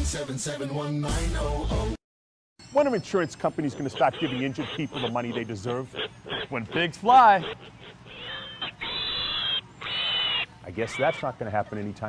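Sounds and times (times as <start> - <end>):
pigs squealing: 3.1 - 12.0.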